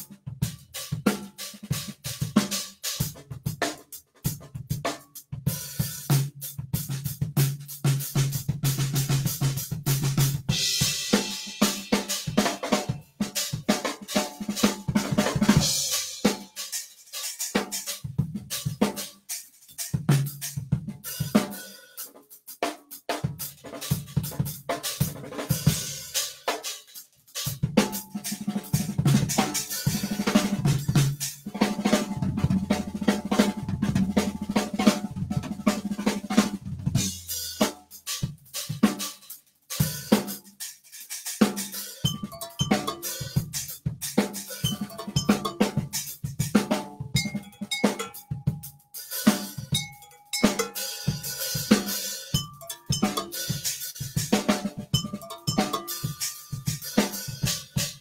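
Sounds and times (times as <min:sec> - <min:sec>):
drum kit grooves: 0:00.0 - 0:58.0.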